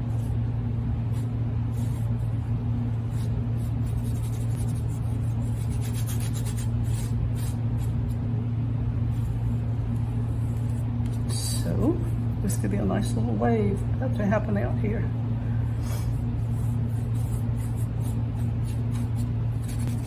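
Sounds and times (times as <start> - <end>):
steady low hum: 0.0 - 20.0
paintbrush rubbing on canvas: 1.0 - 8.2, 15.8 - 20.0.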